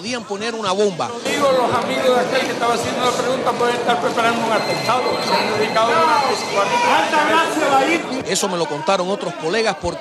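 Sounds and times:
background chatter: 0.0 - 10.0
man talking: 0.0 - 10.0.

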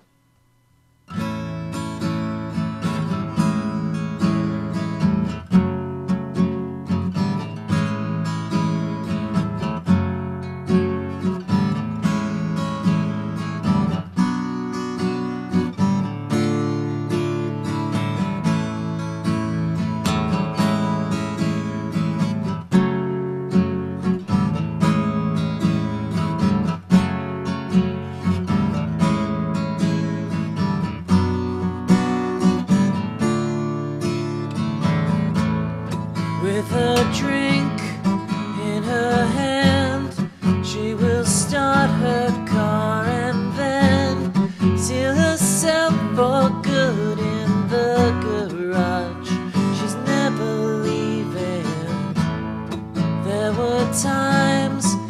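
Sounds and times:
acoustic guitar strumming chords: 0.0 - 55.0.

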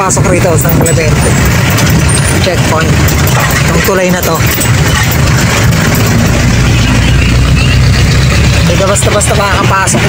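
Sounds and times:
road noise: 0.0 - 10.0
vehicle engine droning: 0.0 - 10.0.

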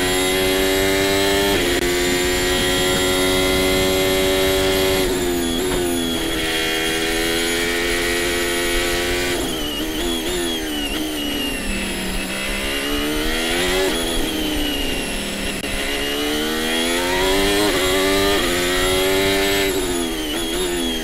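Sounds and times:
racing car engine: 0.0 - 21.0.

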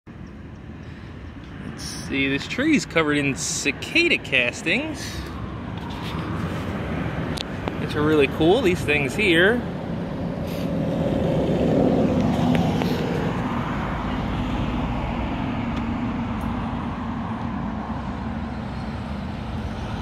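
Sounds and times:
passing vehicle engine rumble: 0.1 - 20.0.

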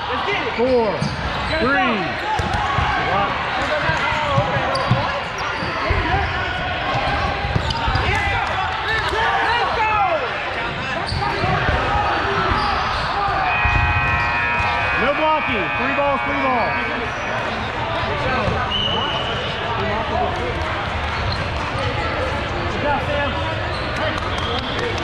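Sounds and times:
players shouting: 0.0 - 20.0
balls bouncing on hardwood floor: 3.8 - 6.0, 7.0 - 8.2
sneakers squeaking on court: 4.2 - 6.1, 7.5 - 8.0.

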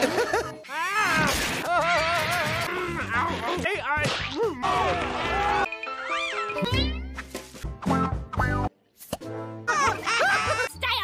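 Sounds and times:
cartoon music: 5.5 - 8.7.

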